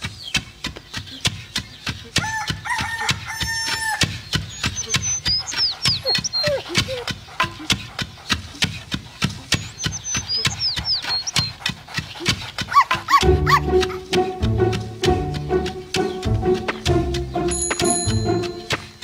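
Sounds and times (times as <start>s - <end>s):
clicking beat: 3.0s - 19.0s
high whistled chirps: 4.5s - 7.0s, 9.6s - 11.5s
cartoon dog barking: 12.2s - 14.2s
music with bass line: 13.2s - 19.0s.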